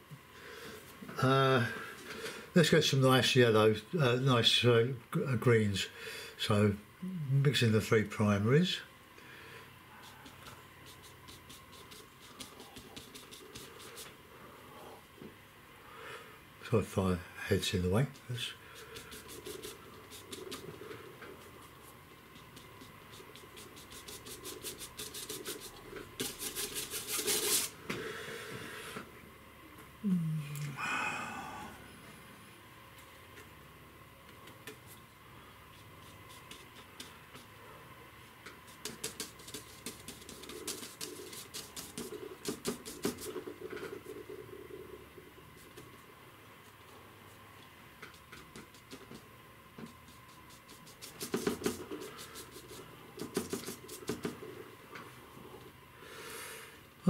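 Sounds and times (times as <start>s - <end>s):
paint mixing on palette: 9.9s - 14.2s, 17.5s - 27.8s, 34.4s - 54.6s.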